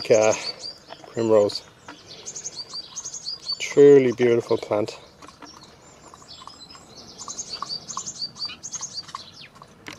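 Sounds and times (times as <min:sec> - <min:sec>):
small birds singing: 0:00.0 - 0:09.9.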